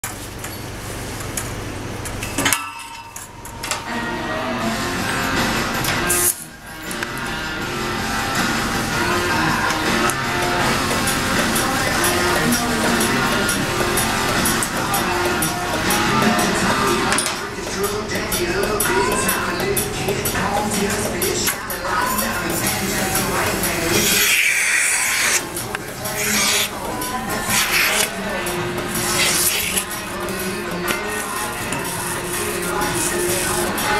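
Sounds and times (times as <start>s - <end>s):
metal milking equipment clanking: 9.7s - 33.9s
milking teat cups hissing: 22.0s - 33.9s.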